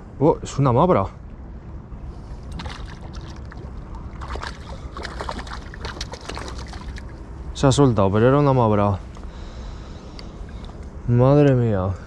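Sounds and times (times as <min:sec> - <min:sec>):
wind and water rumble: 0:00.0 - 0:12.0.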